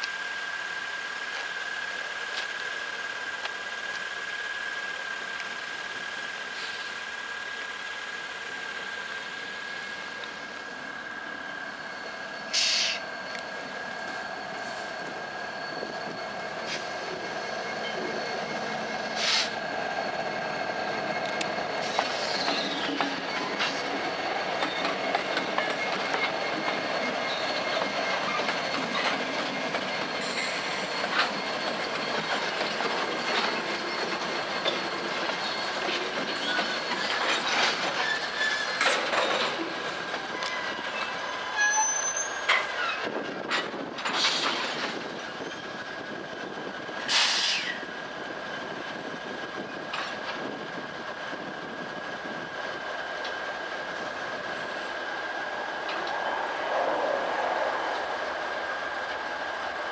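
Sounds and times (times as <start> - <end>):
diesel locomotives rumbling: 0.0 - 59.9
high wheel squeal: 8.7 - 43.4, 44.2 - 48.0, 53.2 - 59.9
wheels clacking over rail joints: 21.2 - 45.8.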